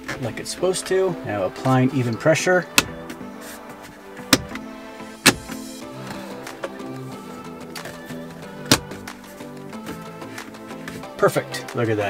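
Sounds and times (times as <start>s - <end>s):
background music: 0.0s - 12.0s
plastic clips snapping: 2.7s - 3.2s, 4.2s - 6.8s, 8.6s - 9.2s.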